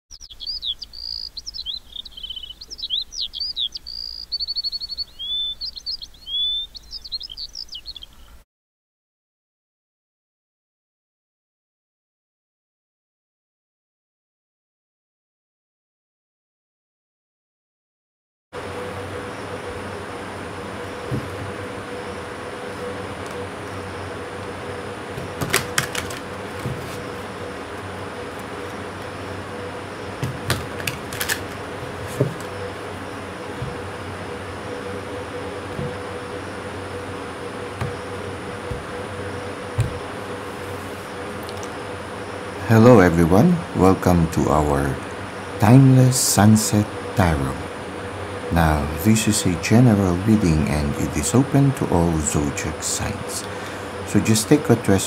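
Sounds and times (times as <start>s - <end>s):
background hiss and hum: 0.1s - 8.4s, 18.6s - 55.0s
small songbirds singing: 0.1s - 8.4s
cards being shuffled: 25.3s - 27.1s, 30.2s - 32.5s
cards snapping: 25.4s - 27.0s, 30.3s - 31.6s.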